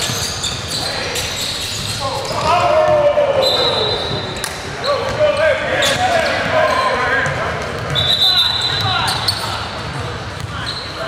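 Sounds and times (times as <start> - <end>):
chatter of players and spectators: 0.0 - 11.0.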